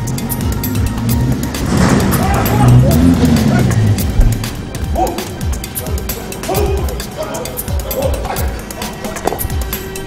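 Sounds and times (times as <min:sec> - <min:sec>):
pickup truck engine pulling up: 0:00.0 - 0:07.2
film soundtrack music: 0:00.0 - 0:10.0
men's raised voices: 0:01.8 - 0:09.4.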